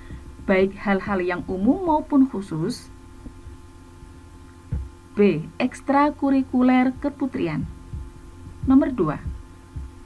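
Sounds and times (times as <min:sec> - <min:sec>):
low electrical hum: 0:00.0 - 0:10.0
soft low thump: 0:04.7 - 0:05.0, 0:06.9 - 0:10.0.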